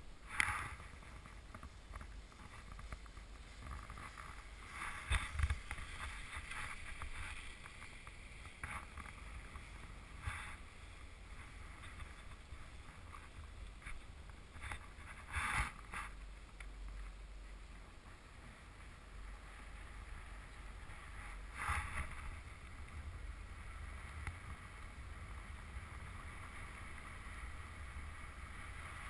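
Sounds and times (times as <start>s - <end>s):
wind rumble on microphone: 0.0s - 29.0s.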